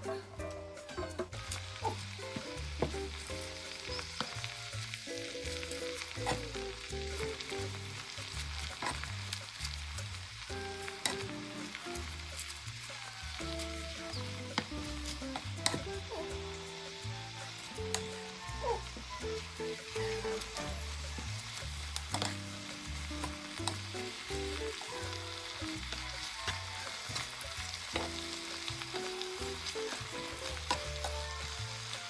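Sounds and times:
background music: 0.0s - 32.0s
spinach sizzling in a frying pan: 0.2s - 32.0s
wooden spoon scraping a pan: 6.0s - 9.6s.

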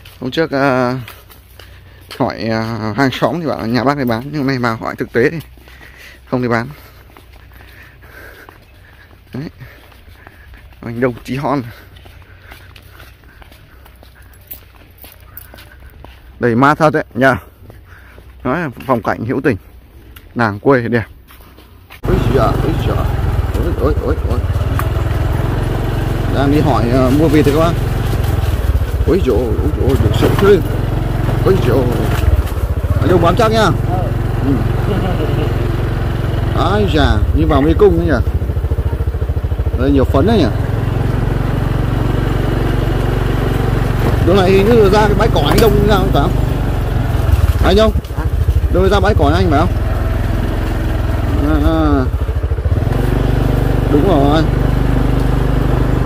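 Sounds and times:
small motorbike engine running: 0.0s - 18.6s, 22.0s - 56.0s.

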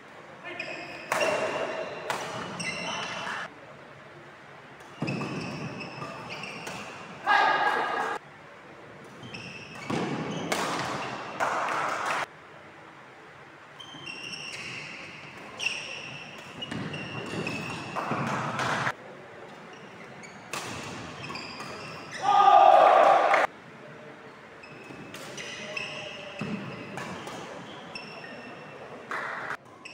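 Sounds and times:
shoes squeaking on wooden court: 0.5s - 3.5s, 4.8s - 7.2s, 9.0s - 12.2s, 13.8s - 22.4s, 24.6s - 29.9s
people shouting: 7.2s - 8.2s, 22.2s - 23.5s.

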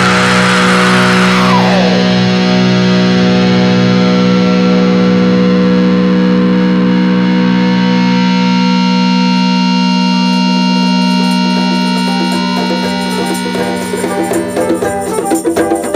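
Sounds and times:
distorted electric guitar chord: 0.0s - 15.9s.

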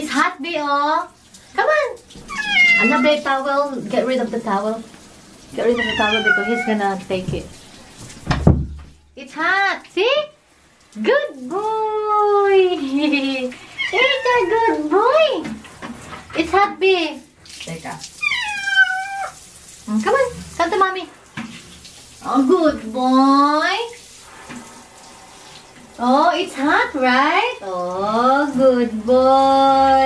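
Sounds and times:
handheld shower running: 0.0s - 30.0s
cat meowing: 2.2s - 3.2s, 5.8s - 6.8s, 13.8s - 14.7s, 18.2s - 19.4s.

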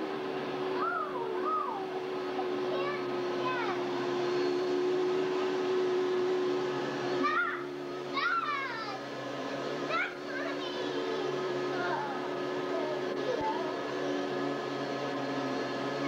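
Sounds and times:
vacuum cleaner motor running: 0.0s - 16.0s
young children's voices: 0.7s - 3.9s, 7.2s - 9.1s, 9.8s - 13.8s.

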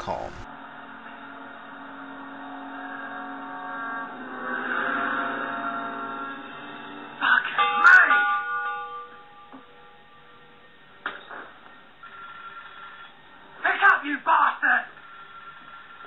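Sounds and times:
voice: 0.0s - 0.4s
bell struck and ringing: 7.6s - 10.7s.

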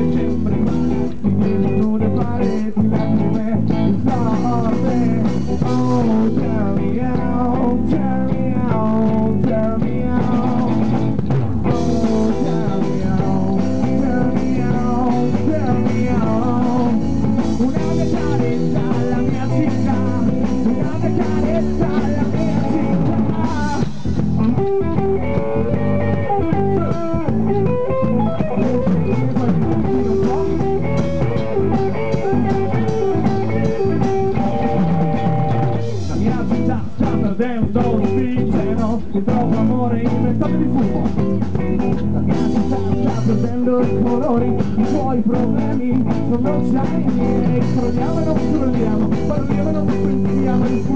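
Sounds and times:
drum kit: 0.0s - 50.9s
electric guitar lead line: 0.0s - 50.9s
live rock band playing: 0.0s - 50.9s.

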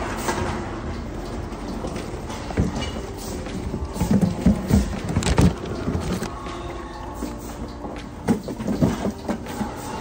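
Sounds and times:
plastic bottles rattling: 2.2s - 6.3s.

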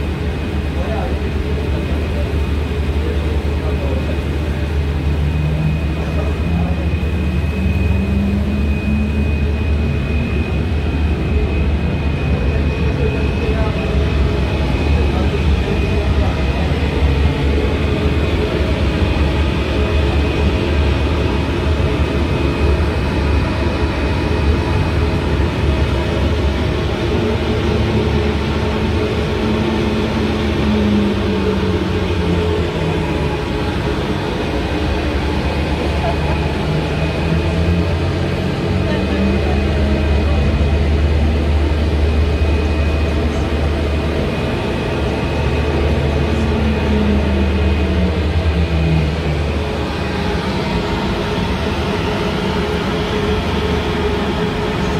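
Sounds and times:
ferry engine drone: 0.0s - 54.9s
thin high whine: 0.0s - 54.9s.

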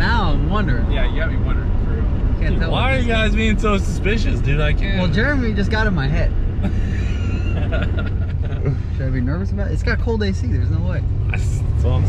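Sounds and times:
car engine and tyre drone: 0.0s - 12.0s
person laughing: 6.6s - 8.9s.

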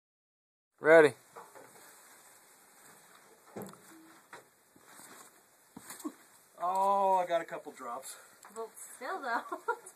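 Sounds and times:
quiet hiss: 0.8s - 9.9s.

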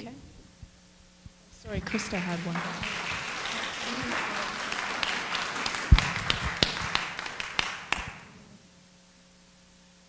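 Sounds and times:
audience applause: 1.8s - 8.4s.

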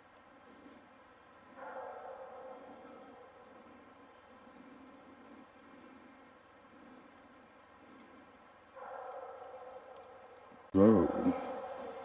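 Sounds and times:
distant dogs howling together: 1.6s - 3.8s, 11.2s - 12.0s.

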